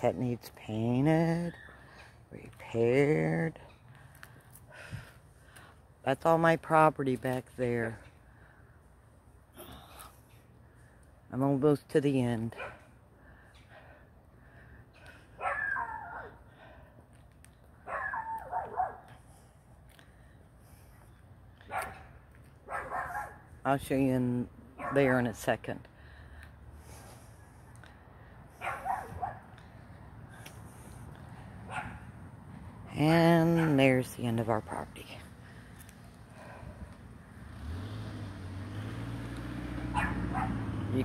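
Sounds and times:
dog barking: 15.4s - 16.3s, 17.8s - 19.1s, 22.7s - 23.4s, 28.6s - 29.4s, 31.7s - 32.0s, 39.9s - 40.6s
vehicle engine humming: 24.7s - 41.0s.

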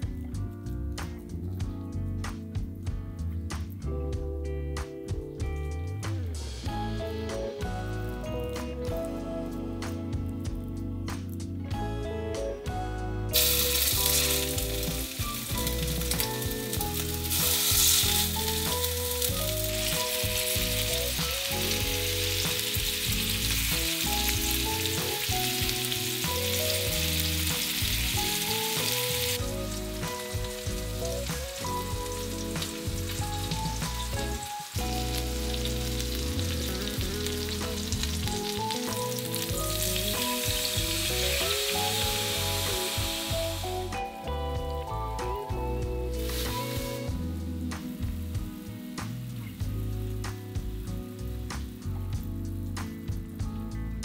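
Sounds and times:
soft background music: 0.0s - 54.0s
meat sizzling in hot oil: 13.3s - 53.5s.

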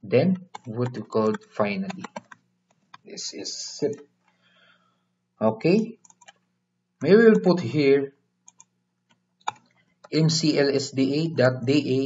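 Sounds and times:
keyboard keystrokes: 0.4s - 2.4s, 6.0s - 6.4s.

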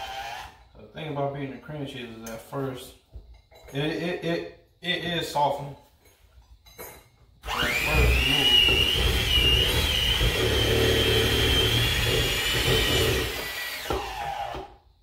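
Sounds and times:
electric hand mixer whining: 0.0s - 0.5s, 7.4s - 14.7s.

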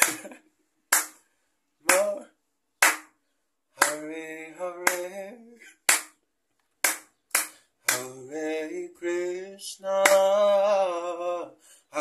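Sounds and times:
hand clapping: 0.0s - 2.2s, 2.8s - 3.2s, 3.8s - 4.2s, 4.8s - 5.2s, 5.8s - 6.2s, 6.8s - 8.2s, 10.0s - 10.4s.

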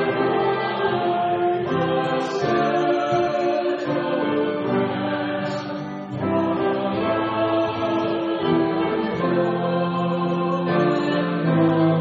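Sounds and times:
acoustic guitar: 0.0s - 12.0s
choir singing a hymn: 0.0s - 12.0s
piano: 0.0s - 12.0s.

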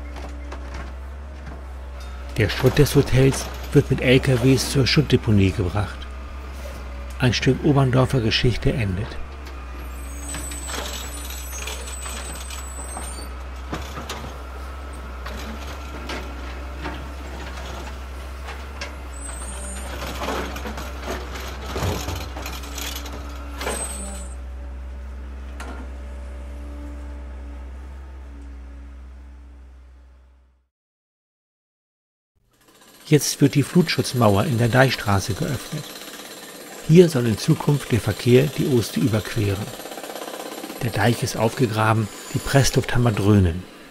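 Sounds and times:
truck and excavator rumbling: 0.0s - 30.6s, 32.6s - 43.9s
high hissing squeals: 9.9s - 13.3s
rubble knocking and clattering: 20.0s - 23.3s.

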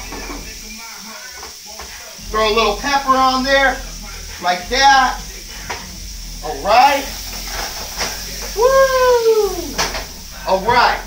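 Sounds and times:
scallops sizzling in a skillet: 0.0s - 11.0s.

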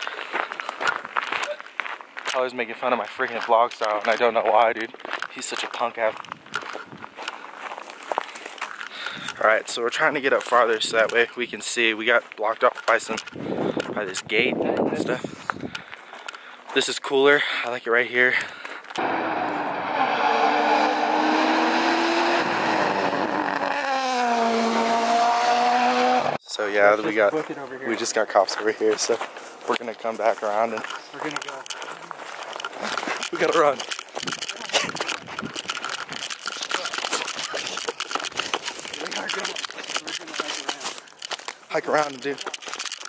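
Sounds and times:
footsteps on dirt forest trail: 0.0s - 13.8s, 15.1s - 19.0s, 26.9s - 43.0s
race car engine revving: 19.0s - 26.4s.

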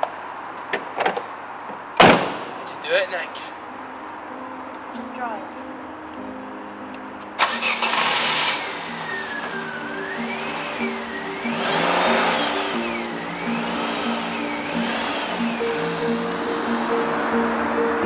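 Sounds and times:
music score with wavering tone: 3.7s - 18.0s
car driving off: 7.3s - 18.0s
car engine starting: 7.3s - 18.0s.

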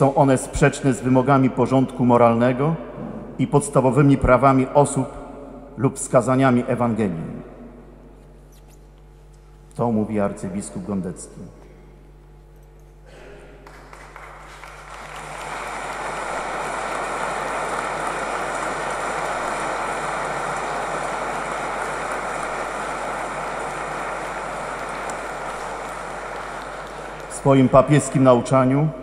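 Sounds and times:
congregation applauding in church: 13.5s - 28.5s.

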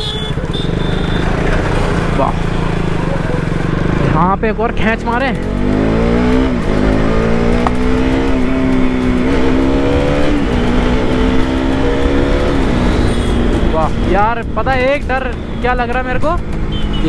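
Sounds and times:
wind and road rumble: 0.0s - 17.0s
motorcycle engine accelerating: 0.1s - 17.0s.

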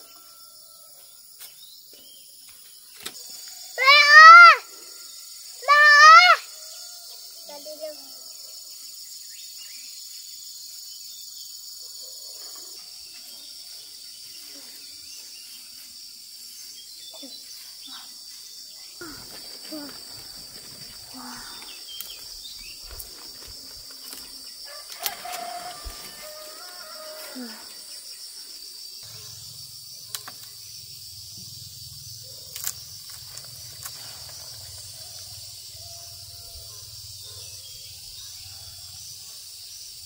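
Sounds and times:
insects droning: 0.0s - 40.0s
young child calling out: 3.8s - 4.6s, 5.6s - 6.5s.

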